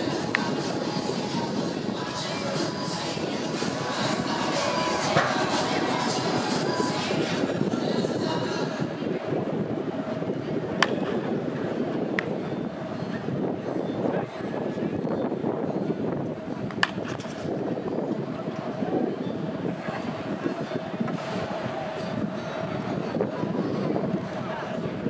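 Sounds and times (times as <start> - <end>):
steady background din: 0.0 - 25.0
wooden bat striking balls: 10.8 - 11.2, 16.7 - 17.4.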